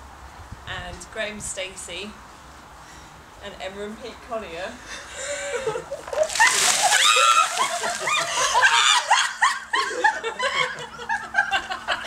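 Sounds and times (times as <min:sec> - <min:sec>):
people laughing: 0:05.2 - 0:12.0
water splashing down: 0:06.0 - 0:09.1.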